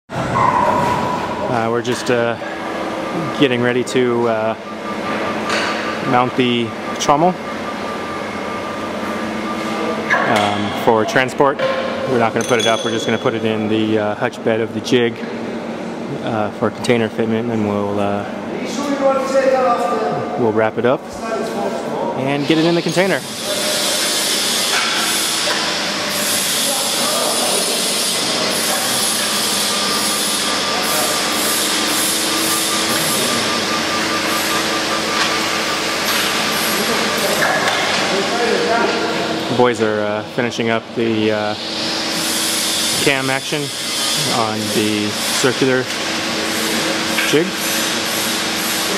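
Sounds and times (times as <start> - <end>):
crane hoist humming and whirring: 0.1 - 48.9
machine running hiss: 21.6 - 48.9.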